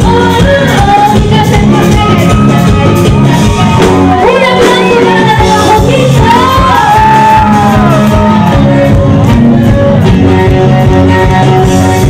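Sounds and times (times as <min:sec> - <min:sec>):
live band music: 0:00.0 - 0:12.0.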